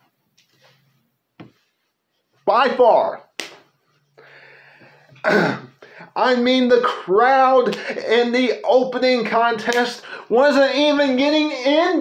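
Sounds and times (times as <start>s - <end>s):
faint breathy noise: 4.1s - 5.1s
man clearing his throat: 5.2s - 5.8s.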